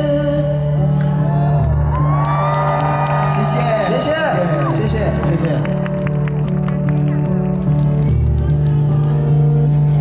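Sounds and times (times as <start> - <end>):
crowd cheering and whooping: 0.8 - 7.9.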